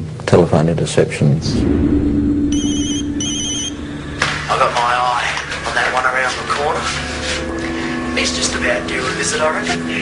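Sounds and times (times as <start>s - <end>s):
telephone ringing electronic trill: 2.5s - 3.8s.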